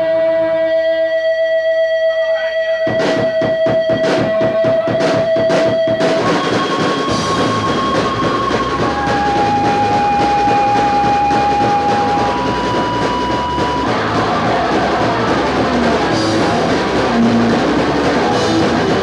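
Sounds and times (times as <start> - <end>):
long held high notes: 0.0 - 19.0
punk rock band playing: 2.8 - 19.0.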